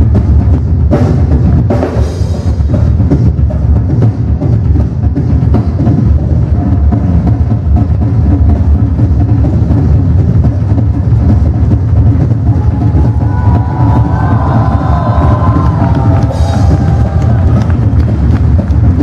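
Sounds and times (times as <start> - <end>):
fast drum solo with cymbals: 0.0 - 19.0.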